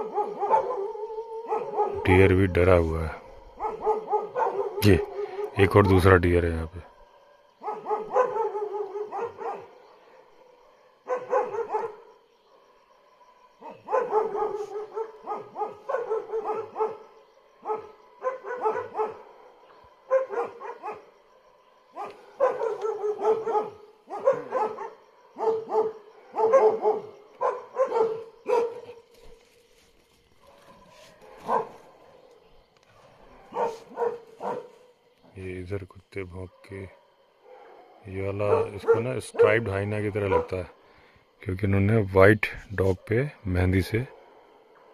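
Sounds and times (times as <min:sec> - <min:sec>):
dog barking: 0:00.0 - 0:06.0, 0:06.8 - 0:29.4, 0:30.4 - 0:35.1, 0:36.5 - 0:40.8, 0:44.0 - 0:44.9.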